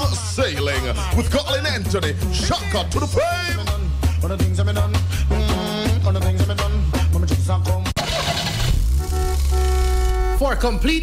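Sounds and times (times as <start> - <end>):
radio promo music: 0.0 - 11.0
car engine starting and revving: 8.0 - 10.3.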